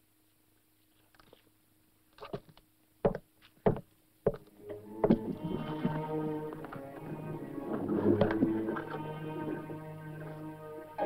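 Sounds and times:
boot footsteps on wooden floor: 3.1 - 4.4
orchestral western film music: 4.6 - 11.0.

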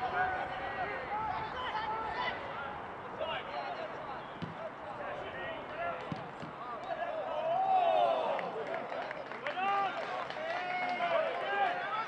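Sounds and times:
footballers shouting: 0.0 - 8.6
football being kicked: 4.4 - 4.6.

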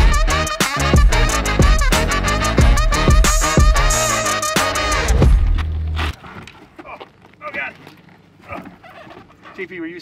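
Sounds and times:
background music: 0.0 - 6.0.

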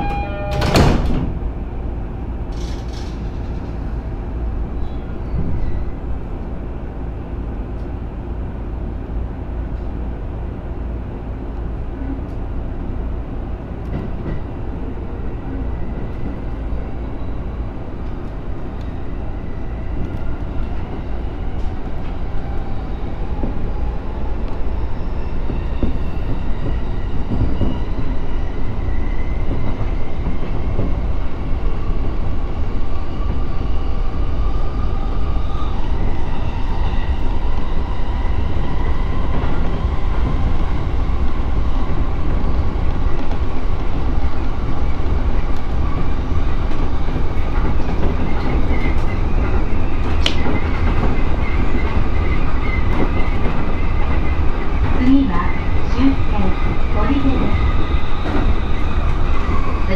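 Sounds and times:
faint train whine: 0.0 - 59.9
train wheels rumbling on rail: 0.0 - 59.9.

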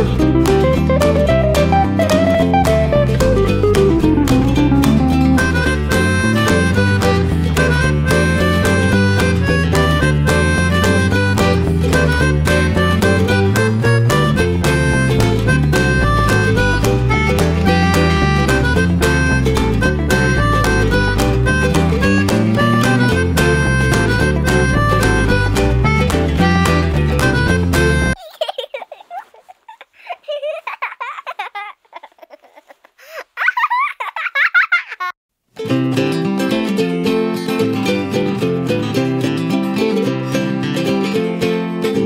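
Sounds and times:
background music with steady beat: 0.0 - 28.2.

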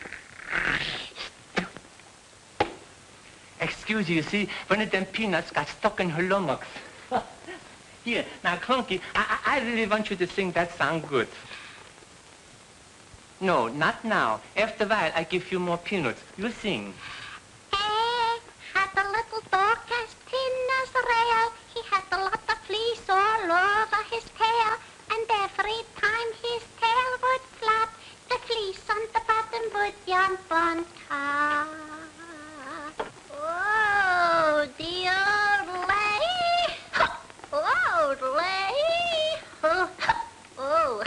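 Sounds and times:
faint breath: 11.4 - 11.9, 17.0 - 17.5
high childlike voice singing: 17.7 - 41.0
person singing in meow-like glides: 31.1 - 40.0, 40.6 - 41.0.

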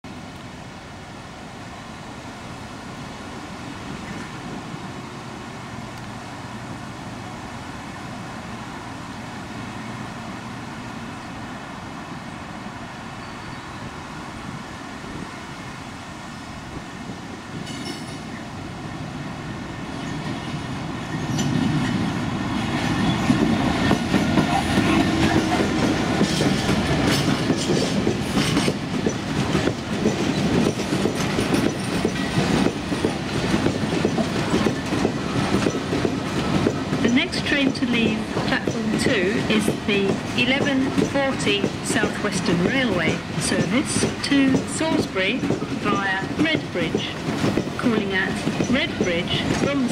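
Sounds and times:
diesel locomotive engine rumble: 0.1 - 49.9
train wheels clickety-clack: 17.5 - 18.4, 19.9 - 49.9.

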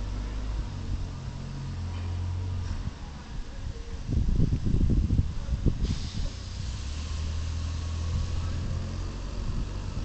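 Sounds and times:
engine hum: 0.0 - 10.0
faint hiss: 5.7 - 9.2.

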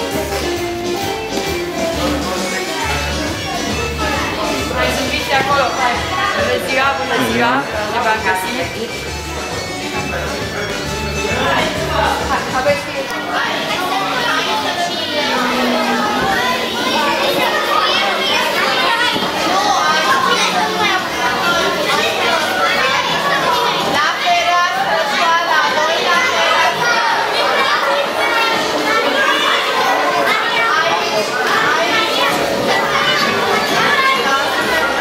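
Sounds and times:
young children chattering: 0.0 - 35.0.

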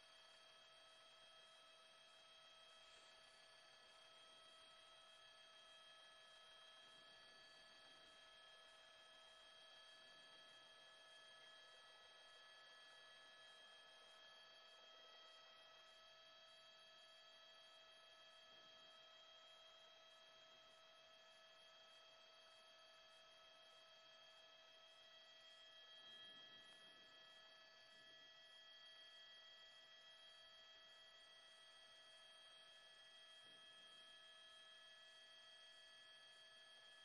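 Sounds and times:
faint electronic hum of tones: 0.0 - 37.0.

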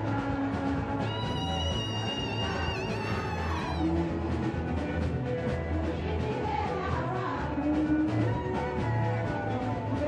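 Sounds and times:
band music with bass line: 0.0 - 10.0.

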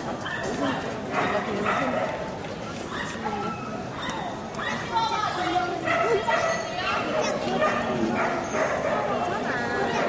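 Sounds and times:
crowd chatter: 0.0 - 10.0
dogs yapping and barking: 0.1 - 5.1, 5.7 - 10.0.

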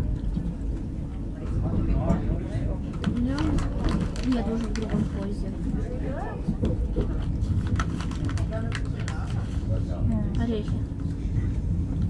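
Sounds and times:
train running rumble: 0.0 - 12.0
people's voices: 1.2 - 10.8.

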